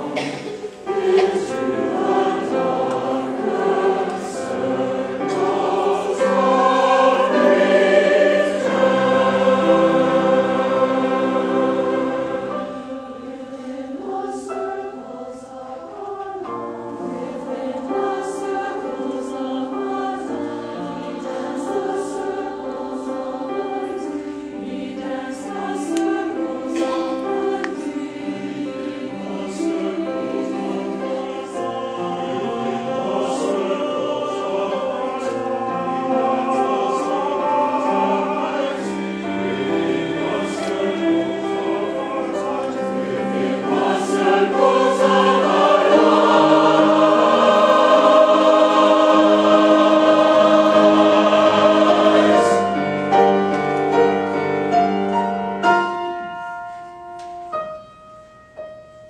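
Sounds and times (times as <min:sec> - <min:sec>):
mixed choir singing: 0:00.0 - 0:56.4.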